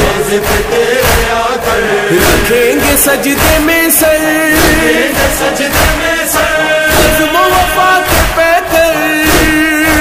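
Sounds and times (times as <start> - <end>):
low drum beat: 0.0 - 10.0
voices chanting: 0.0 - 10.0.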